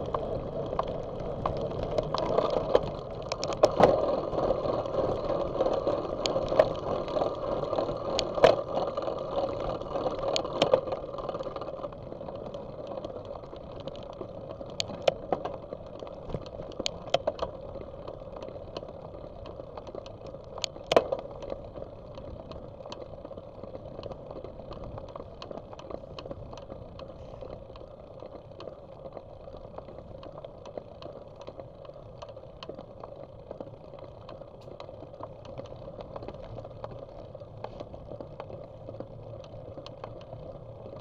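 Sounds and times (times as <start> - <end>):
bike rattling clicks: 0.0 - 41.0.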